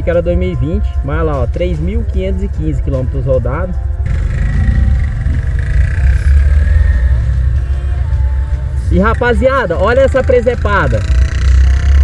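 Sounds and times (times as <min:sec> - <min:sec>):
motorbike engine running: 0:03.6 - 0:12.0.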